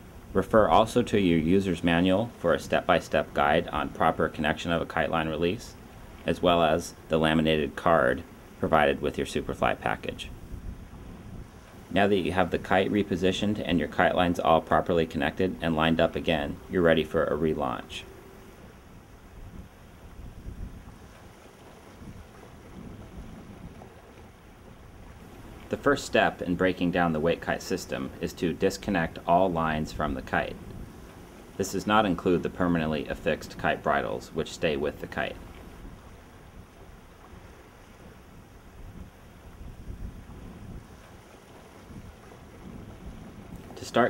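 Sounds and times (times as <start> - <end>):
wind noise on microphone: 0.0 - 26.4, 28.8 - 31.6, 35.4 - 44.0
low wash of water: 0.0 - 44.0.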